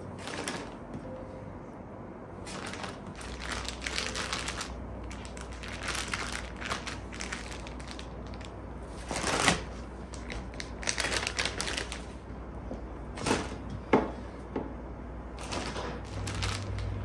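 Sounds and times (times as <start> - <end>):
plastic bag rustling and crinkling: 0.2 - 0.8, 2.4 - 12.2, 15.4 - 17.0.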